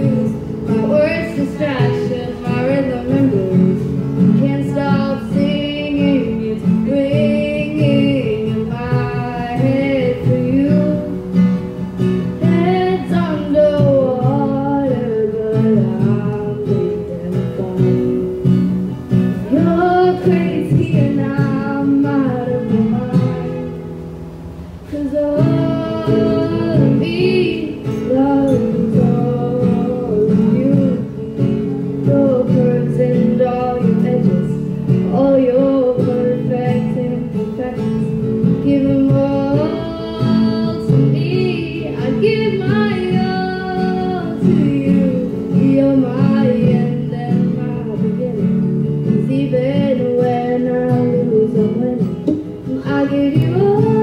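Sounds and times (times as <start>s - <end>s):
woman singing: 0.0s - 23.9s, 24.8s - 54.0s
acoustic guitar strumming: 0.0s - 54.0s.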